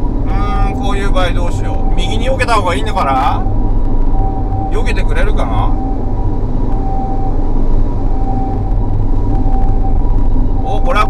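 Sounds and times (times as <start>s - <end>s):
car road and engine rumble: 0.0s - 11.0s
two-tone ambulance siren: 0.0s - 11.0s.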